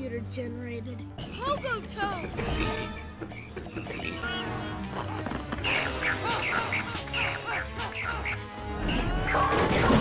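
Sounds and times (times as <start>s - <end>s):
film score music: 0.0s - 10.0s
quack-like squawking calls: 3.4s - 9.9s.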